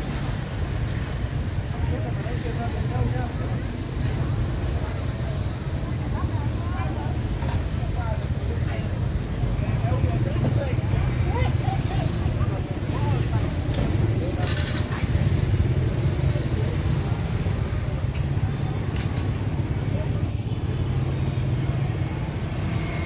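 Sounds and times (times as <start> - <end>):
indistinct chatter: 0.0 - 23.0
motorbike traffic rumble: 0.0 - 23.0.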